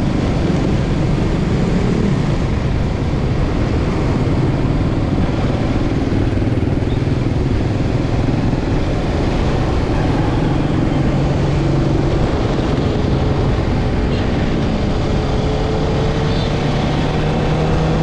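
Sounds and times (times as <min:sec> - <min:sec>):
motorcycle engine running: 0:00.0 - 0:18.0
wind and road noise: 0:00.0 - 0:18.0.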